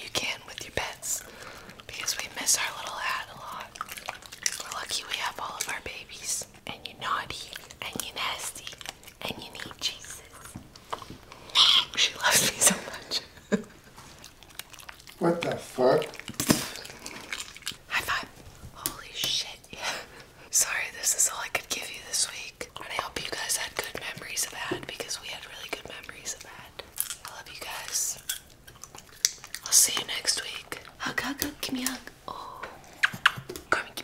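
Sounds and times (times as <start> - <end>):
woman whispering: 0.0 - 3.7, 4.6 - 10.5, 11.6 - 13.2, 17.9 - 28.2, 29.6 - 32.8, 33.7 - 34.0
dogs crunching popcorn: 0.0 - 5.9, 6.5 - 11.6, 12.3 - 18.7, 23.7 - 32.2.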